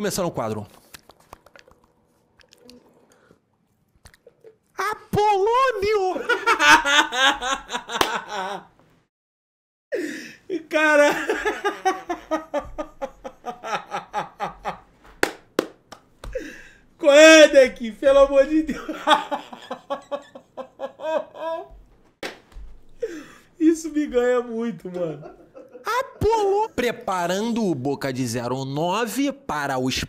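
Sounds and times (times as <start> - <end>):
mouth noises chewing: 0.8 - 4.8
laughter: 6.1 - 8.7, 10.9 - 14.8, 18.7 - 21.8, 24.9 - 26.6
breathy laugh: 18.7 - 21.8
sharp smacks: 22.2 - 22.9.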